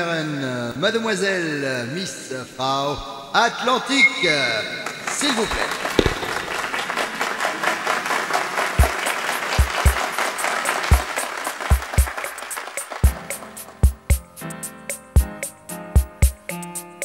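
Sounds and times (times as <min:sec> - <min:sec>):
audience applause: 0:05.0 - 0:13.8.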